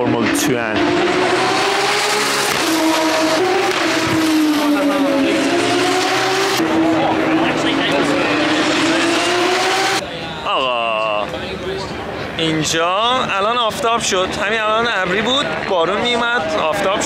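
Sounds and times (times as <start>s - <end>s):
racing car engines at speed: 0.0s - 10.1s.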